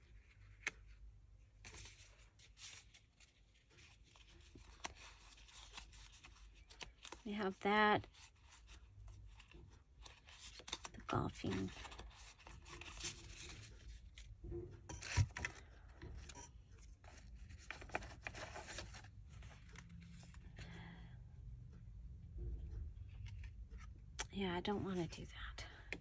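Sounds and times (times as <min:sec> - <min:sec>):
paper rustling: 0:00.0 - 0:14.3, 0:15.0 - 0:20.4
picture cards being leafed through: 0:01.6 - 0:14.4, 0:15.0 - 0:20.6.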